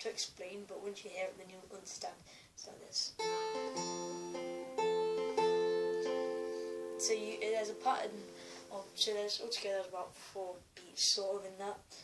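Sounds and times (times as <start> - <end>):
fingerpicked acoustic guitar: 3.2 - 9.4.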